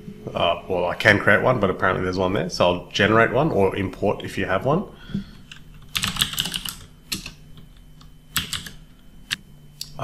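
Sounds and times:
typing on computer keyboard: 0:05.9 - 0:07.4, 0:08.3 - 0:08.8.

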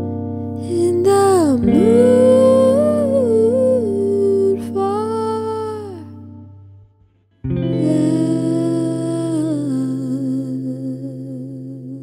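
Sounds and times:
person humming with vibrato: 0:00.6 - 0:06.4, 0:07.8 - 0:12.0.

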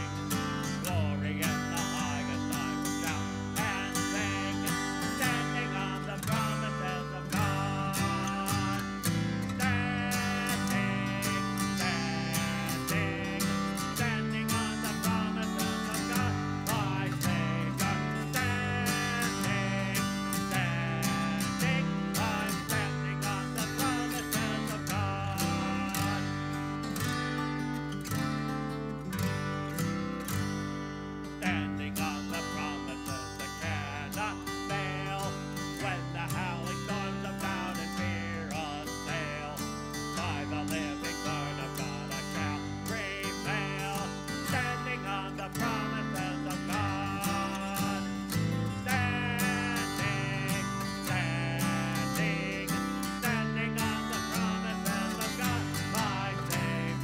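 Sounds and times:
hymn singing: 0:00.0 - 0:57.0
strummed acoustic guitar: 0:00.0 - 0:57.0.

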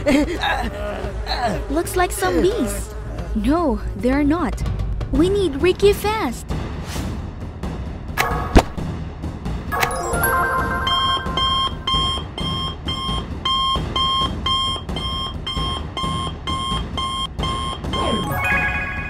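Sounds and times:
background music: 0:00.0 - 0:19.0
rapid electronic alarm beeps: 0:10.9 - 0:18.6.

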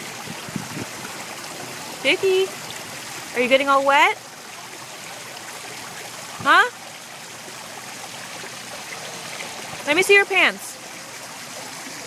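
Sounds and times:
fountain water trickling: 0:00.0 - 0:12.0.

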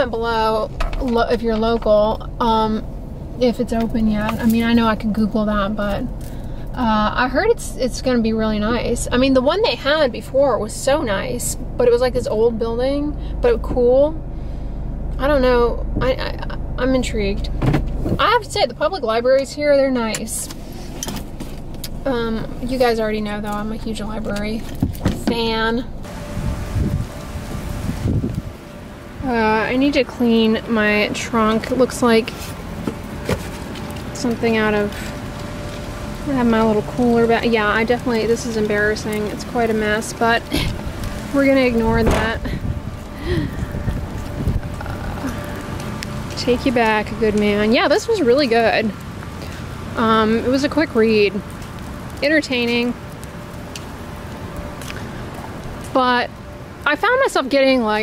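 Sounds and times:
outdoor background hiss: 0:00.0 - 0:58.0
wind and handling rumble: 0:00.0 - 0:58.0
steady hiss: 0:26.0 - 0:43.9.

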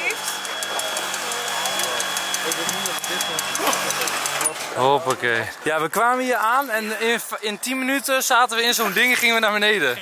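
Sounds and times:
electric hoist motor running: 0:00.0 - 0:05.0.

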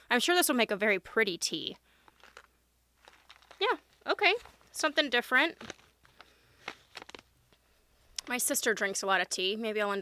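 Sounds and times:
soft ticks and rustles of handling: 0:01.7 - 0:09.0.

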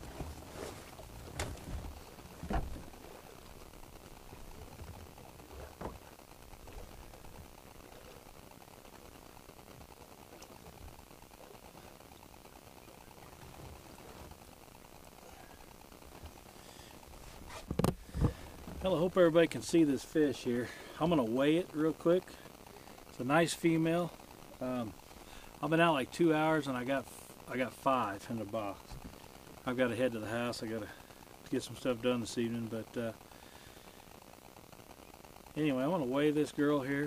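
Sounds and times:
steady low outdoor hiss: 0:00.0 - 0:37.0.

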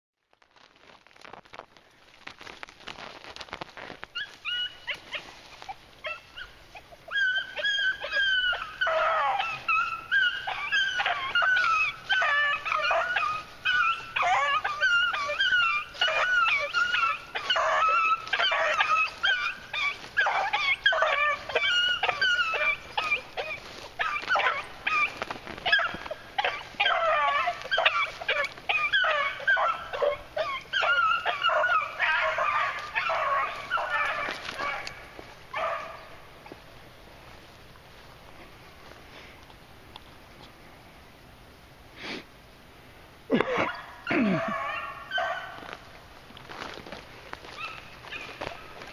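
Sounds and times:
hounds baying: 0:03.3 - 0:36.8, 0:43.3 - 0:45.9, 0:46.5 - 0:48.9.

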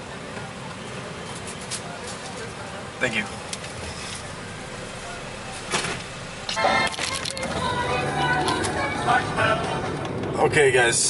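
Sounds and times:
car idling with low hum: 0:00.0 - 0:11.0.

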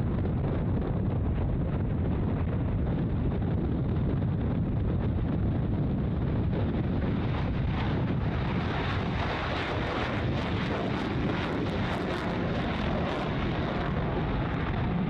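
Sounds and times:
jet engines roaring at takeoff: 0:00.0 - 0:15.0.

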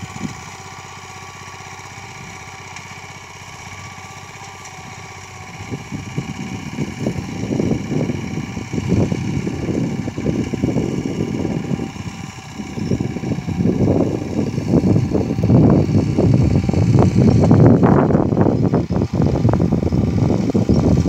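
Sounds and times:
wind rumble on microphone: 0:00.0 - 0:00.6, 0:04.8 - 0:21.0
distant small engine running: 0:00.0 - 0:21.0.

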